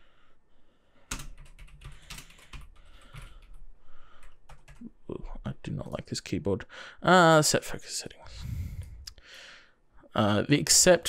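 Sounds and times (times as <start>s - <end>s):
computer keyboard typing: 1.1s - 3.6s, 4.2s - 4.8s.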